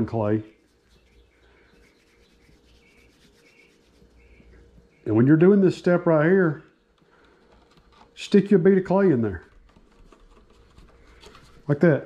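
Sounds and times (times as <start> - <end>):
fingers rubbing clay: 0.0 - 4.7
low steady hum: 0.0 - 12.0.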